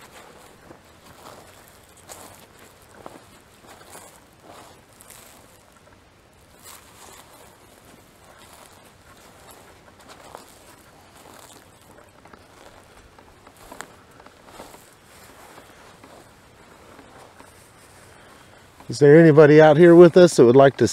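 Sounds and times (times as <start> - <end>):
footsteps on dry grass: 0.0 - 20.9.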